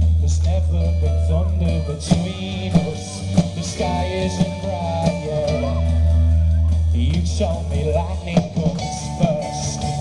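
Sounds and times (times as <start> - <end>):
deep bass: 0.0 - 10.0
rock band playing: 0.0 - 10.0.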